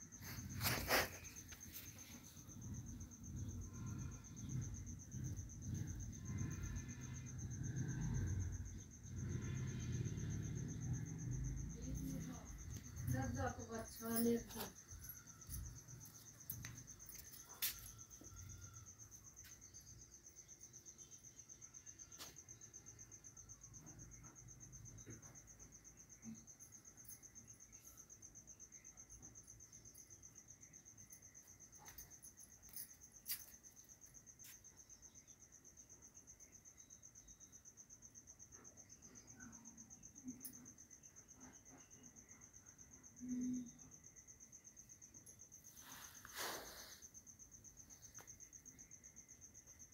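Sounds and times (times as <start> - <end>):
high-pitched insect chirping: 0.0 - 49.9.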